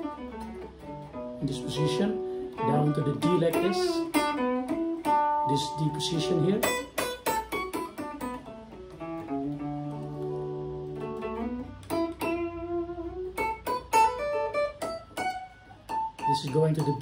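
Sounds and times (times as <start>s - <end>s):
guitar plucked notes: 0.0s - 17.0s.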